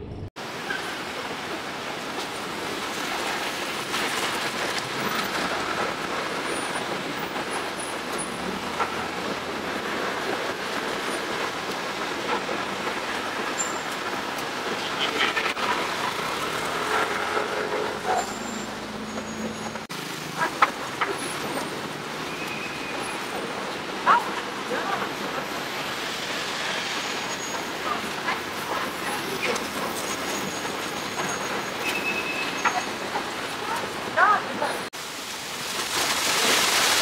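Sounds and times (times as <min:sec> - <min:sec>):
cars passing: 0:02.3 - 0:34.9.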